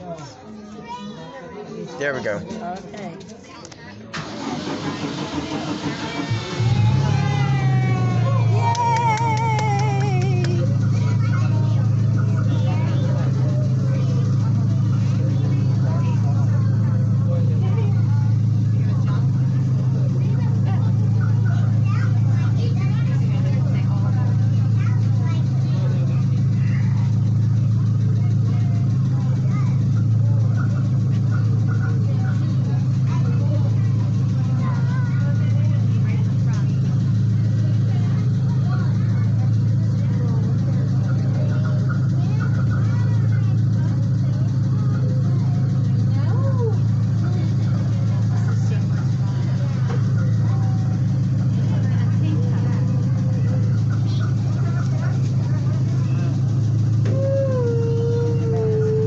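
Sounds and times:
passengers chattering: 0.0s - 59.0s
train engine idling: 2.2s - 59.0s.

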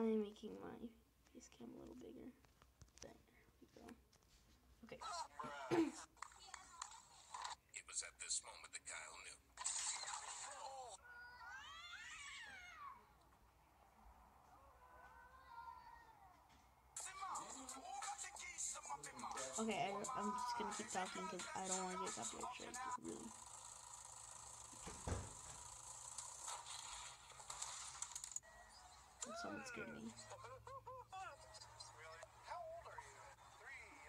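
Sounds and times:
person's voice: 18.8s - 23.3s, 29.3s - 30.3s
thump: 24.9s - 25.4s.

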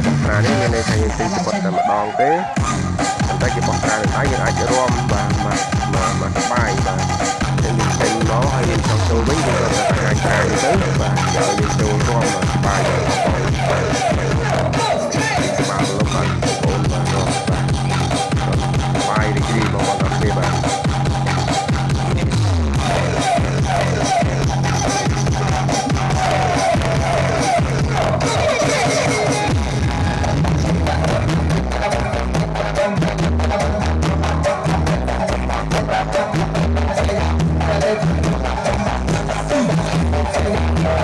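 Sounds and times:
electronic dance music: 0.0s - 41.0s.

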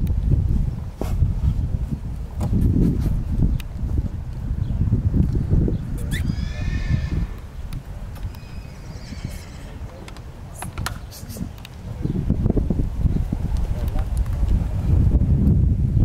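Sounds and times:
horse whinnying: 6.0s - 7.5s, 8.2s - 10.1s.

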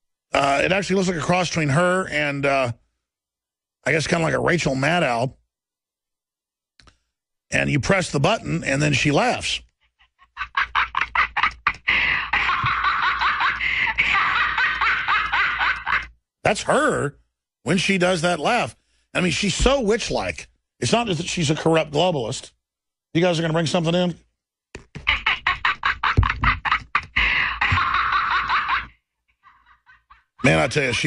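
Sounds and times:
tinny recorded woman laughing: 9.8s - 16.1s, 24.9s - 31.0s
toy voice chip cackling laugh: 25.0s - 31.0s.

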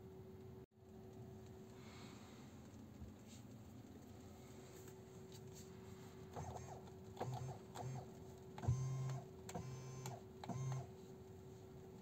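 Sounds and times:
small electric motor whirring: 6.3s - 10.9s.

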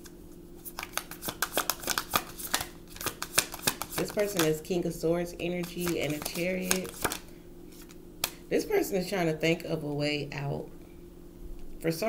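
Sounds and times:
cards snapping while shuffled: 0.6s - 4.6s, 5.6s - 8.4s.

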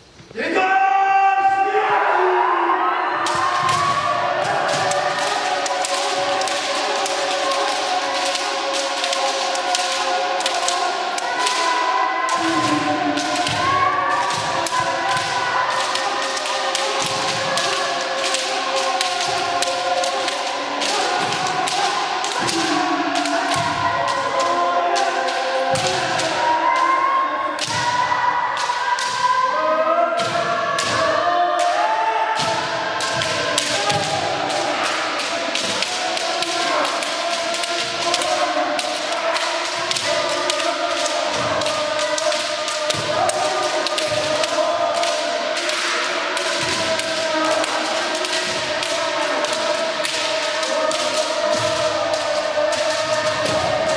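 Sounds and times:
players shouting: 0.4s - 53.9s.

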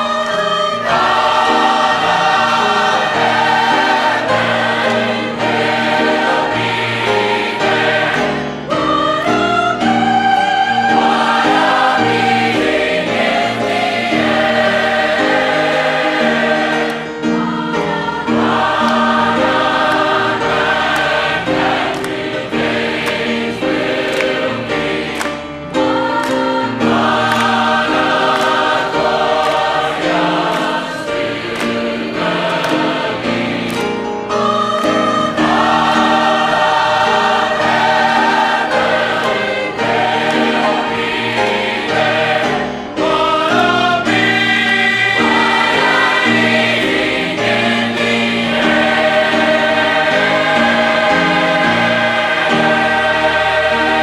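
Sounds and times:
choir singing gospel song: 0.0s - 54.0s
piano accompaniment: 0.0s - 54.0s.

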